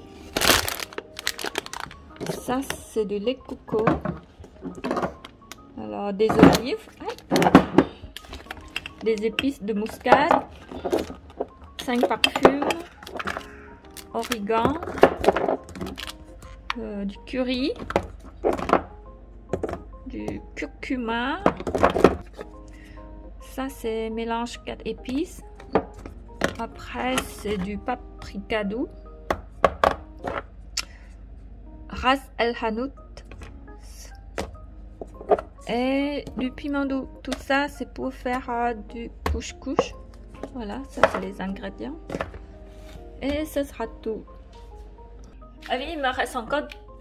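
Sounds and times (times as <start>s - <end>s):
plastic jars knocking together: 6.3s - 13.5s, 14.2s - 16.1s, 17.8s - 18.9s.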